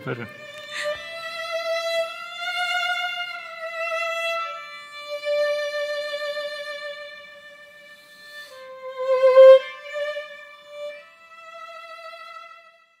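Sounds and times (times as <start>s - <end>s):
solo violin long notes: 0.0s - 13.0s.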